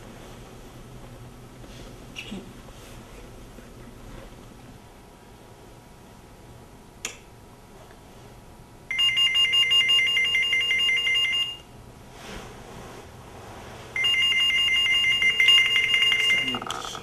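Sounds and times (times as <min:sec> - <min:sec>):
warbling two-tone phone ringtone: 0:08.9 - 0:11.6, 0:14.0 - 0:16.8.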